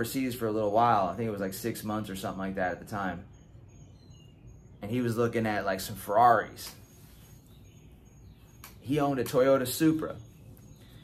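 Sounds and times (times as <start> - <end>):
high-pitched chirps: 3.0 - 11.0.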